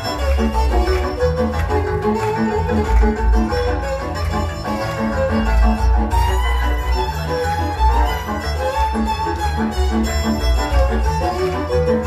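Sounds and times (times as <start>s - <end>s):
double bass: 0.0s - 12.0s
violin melody: 0.0s - 12.0s.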